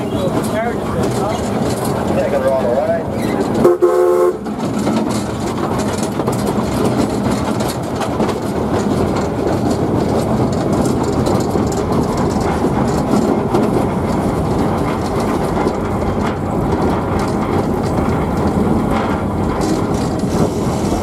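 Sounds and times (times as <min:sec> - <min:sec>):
steam train rumble and clatter: 0:00.0 - 0:21.0.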